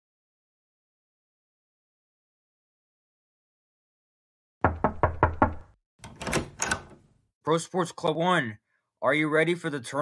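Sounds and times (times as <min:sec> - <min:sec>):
knuckles knocking on door: 0:04.6 - 0:05.8
door opening: 0:04.7 - 0:07.1.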